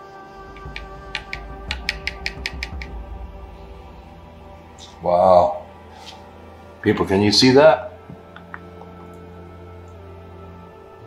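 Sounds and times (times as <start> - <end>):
background music: 0.0 - 11.0
low handling rumble: 0.2 - 9.4.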